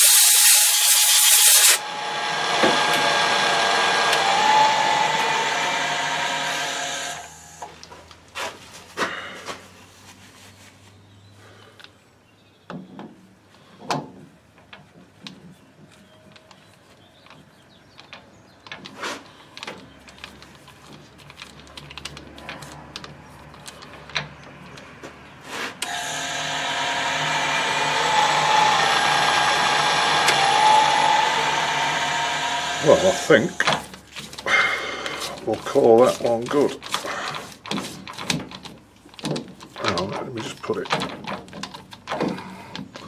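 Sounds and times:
metal lathe running: 0.0s - 7.6s, 25.8s - 33.8s
metal clicks and knocks: 37.6s - 43.0s.

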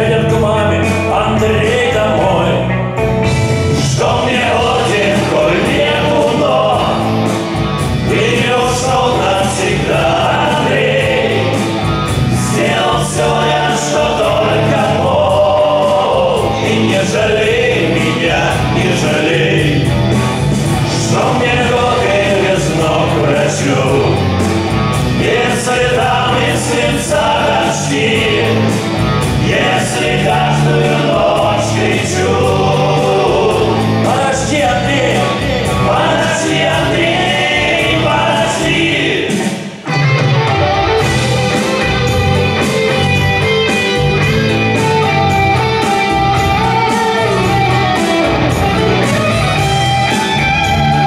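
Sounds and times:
choir-like vocals: 0.0s - 2.8s, 3.6s - 39.9s
men singing in harmony: 0.0s - 2.8s, 3.6s - 39.8s
live rock band playing: 0.0s - 51.0s.

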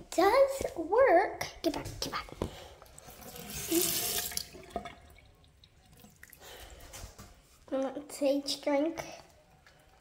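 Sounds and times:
tap water running into sink: 3.1s - 6.4s.

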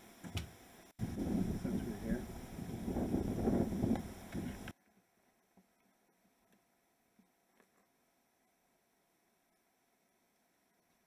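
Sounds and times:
wind on microphone: 1.0s - 4.7s.

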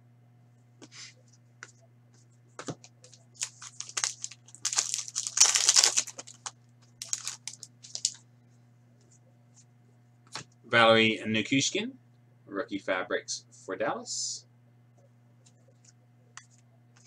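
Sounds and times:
wrapper crinkling: 3.0s - 8.2s.

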